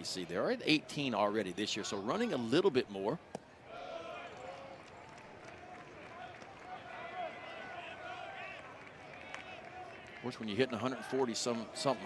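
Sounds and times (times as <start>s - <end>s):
stadium crowd chattering: 0.0s - 12.0s.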